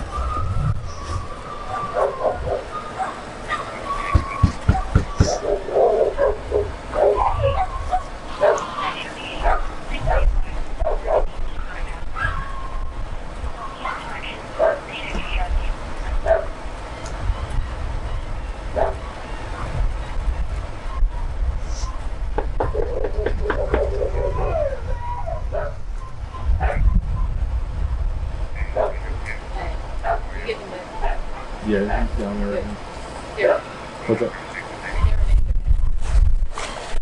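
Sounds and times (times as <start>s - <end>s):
dog whining: 0.1s - 8.6s, 22.6s - 25.8s
dog yelping: 1.3s - 11.3s, 12.2s - 12.8s, 18.7s - 19.8s, 22.6s - 25.8s, 28.6s - 29.1s.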